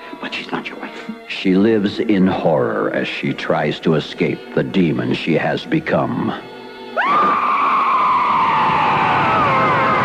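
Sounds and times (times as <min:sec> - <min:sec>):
woman screaming: 0:07.0 - 0:10.0.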